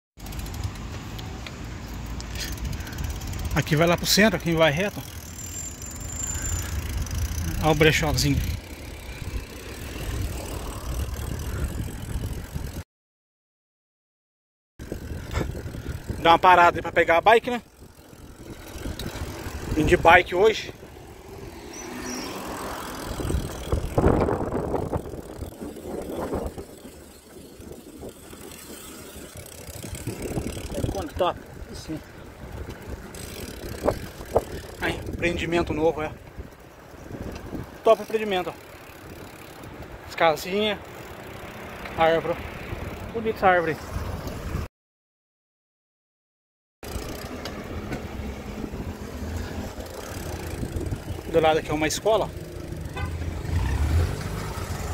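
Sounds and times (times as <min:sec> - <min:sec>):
bike riding on pavement: 0:00.2 - 0:12.8, 0:14.8 - 0:44.7, 0:46.8 - 0:54.9
street traffic noise: 0:00.2 - 0:12.8, 0:14.8 - 0:44.7, 0:46.8 - 0:54.9
car driving by rumbling: 0:52.5 - 0:54.9.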